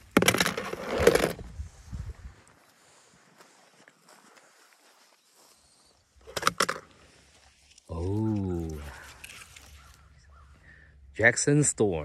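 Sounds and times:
dry grass crackling under footsteps: 1.4 - 10.7
branches rustling pushed aside: 6.9 - 10.1.

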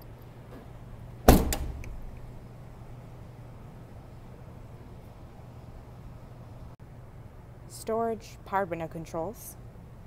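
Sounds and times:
car liftgate thud: 1.2 - 2.2.

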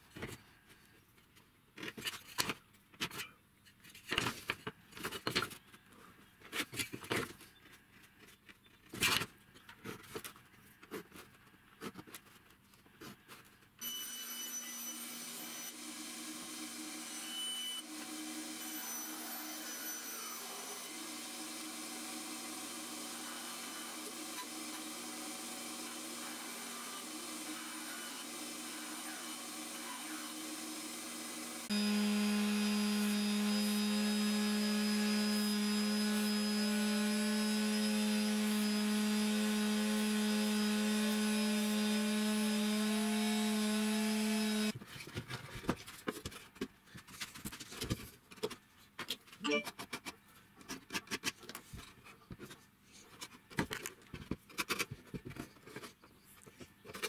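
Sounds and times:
bandsaw cutting wood: 13.8 - 44.8
electric orbital sander running: 14.7 - 44.8.

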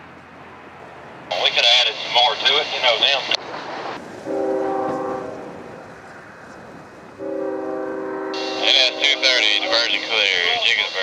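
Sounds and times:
low train rumble: 0.0 - 11.0
locomotive air horn blast: 4.2 - 5.7, 7.2 - 11.0.

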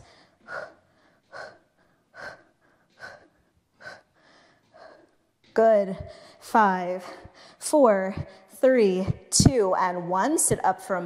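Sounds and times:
woman breathing hard: 0.0 - 8.6.

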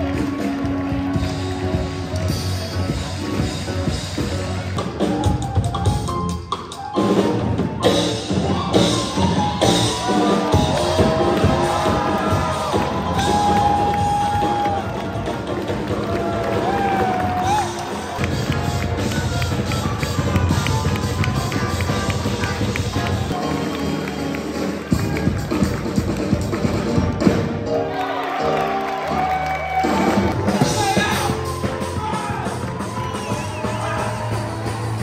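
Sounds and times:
drum kit beat: 0.0 - 27.8, 29.7 - 35.0.

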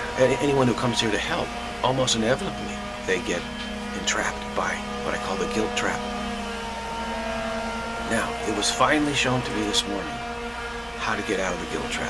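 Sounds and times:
ambient music drone: 0.0 - 12.0.

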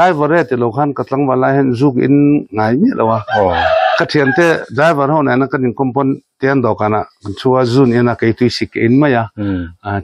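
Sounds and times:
man speaking: 0.0 - 10.0
rooster crowing: 3.2 - 4.6.

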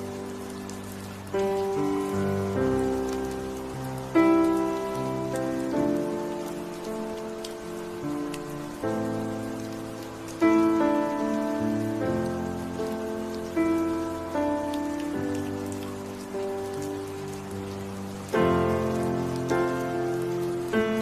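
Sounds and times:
rain with raindrop ticks: 0.0 - 21.0
slow piano music: 0.0 - 21.0.

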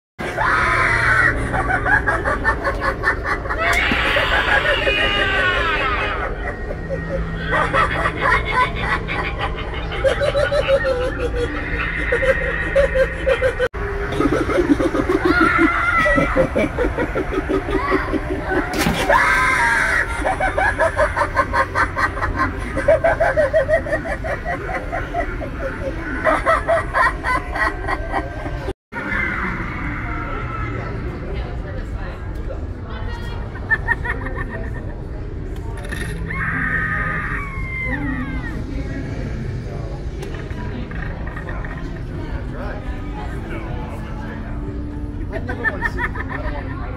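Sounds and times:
low background hum: 0.2 - 46.9
fast stuttering cackle: 0.4 - 28.4.

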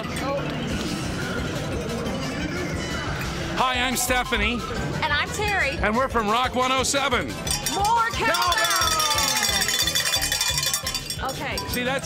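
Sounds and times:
cowbell ringing rapidly: 1.5 - 12.0.

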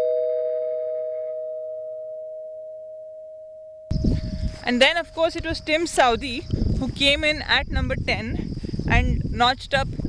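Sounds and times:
two-note ding-dong chime: 0.0 - 3.9.

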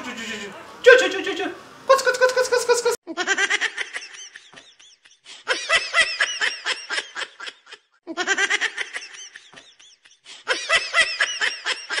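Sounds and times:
high-pitched laughter: 1.9 - 12.0.

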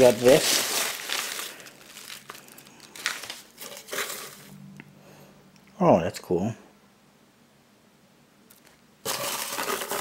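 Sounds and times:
paper filler rustling and crinkling: 0.0 - 4.5, 9.1 - 10.0.

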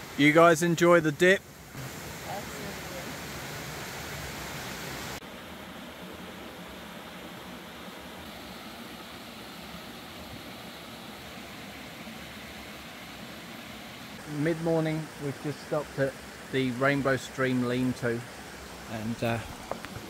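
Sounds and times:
stream flowing over stones: 0.8 - 6.4, 7.5 - 20.0.

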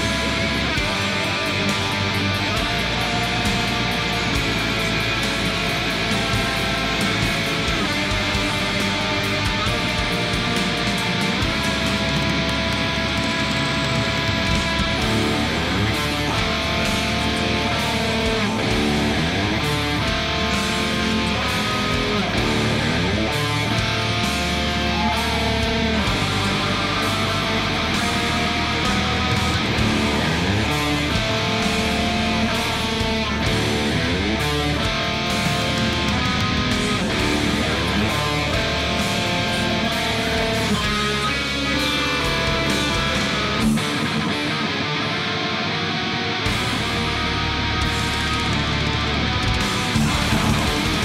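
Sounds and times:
bass guitar: 0.0 - 51.0
distorted electric guitar riffs: 0.0 - 51.0
drums: 0.0 - 51.0.

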